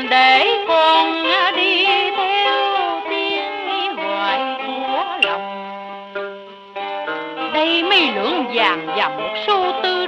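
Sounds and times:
sustained string accompaniment: 0:00.0 - 0:10.0
melodic line with pitch bends: 0:05.1 - 0:10.0.

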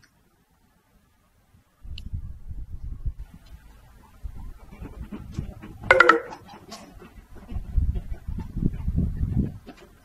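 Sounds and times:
flock of birds grunting: 0:03.6 - 0:10.0.

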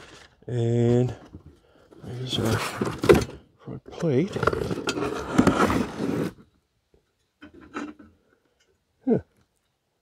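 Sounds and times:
metal plate scraping in cardboard: 0:02.0 - 0:03.4, 0:04.2 - 0:06.5.

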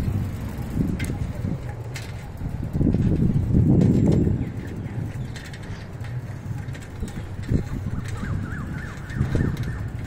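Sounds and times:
moving vehicle rumble: 0:00.0 - 0:10.0
wind on microphone: 0:00.0 - 0:10.0
birds chirping: 0:04.2 - 0:06.1, 0:07.0 - 0:10.0.

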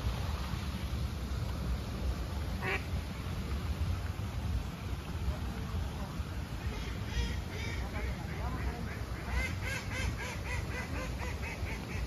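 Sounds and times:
steady low rumble: 0:00.0 - 0:12.0
duck quacking: 0:06.7 - 0:12.0.

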